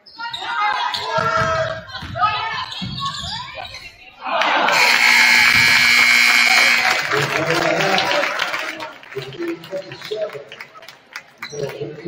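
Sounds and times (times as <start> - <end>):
voices and crowd noise: 0.0 - 12.0
scoreboard horn buzz: 4.7 - 7.2.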